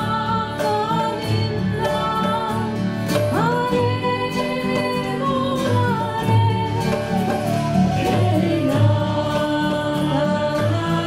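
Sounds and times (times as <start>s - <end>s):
strummed acoustic guitar: 0.0s - 11.0s
voices singing: 3.4s - 11.0s
flute playing: 6.4s - 10.0s.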